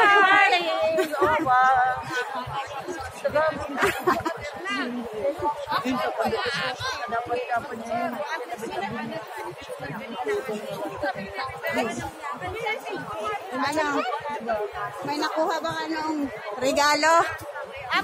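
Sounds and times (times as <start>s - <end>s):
people chattering: 0.0s - 18.0s.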